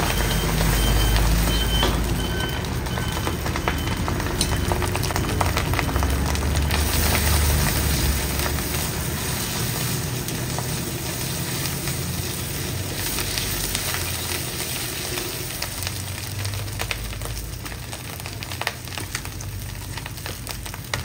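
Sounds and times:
rice sizzling in a wok: 0.0s - 21.0s.

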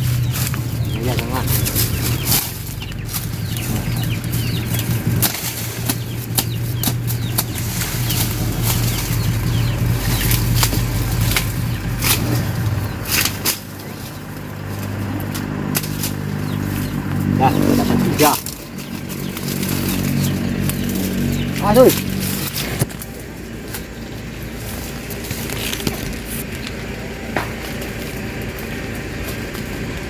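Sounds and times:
machete chopping cane stalks: 0.0s - 26.5s
dry leaves rustling: 0.0s - 30.0s
steady low hum: 0.0s - 30.0s.

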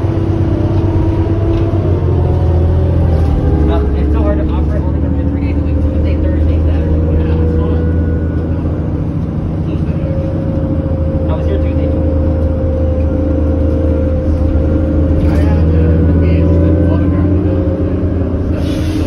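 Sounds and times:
bus engine drone: 0.0s - 19.0s.

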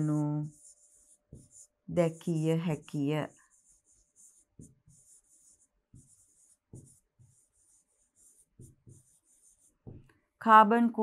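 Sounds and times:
pen scratching on tablet screen: 0.0s - 10.1s.

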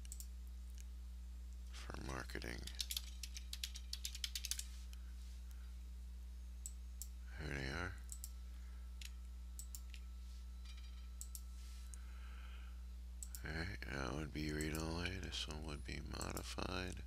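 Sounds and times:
computer mouse clicks: 0.0s - 0.9s, 2.6s - 4.7s, 8.1s - 8.4s, 9.0s - 10.0s, 13.2s - 13.4s
low electrical hum: 0.0s - 17.0s.

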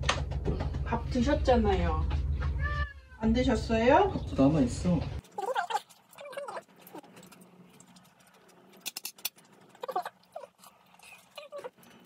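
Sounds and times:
cat meowing: 2.6s - 3.2s.

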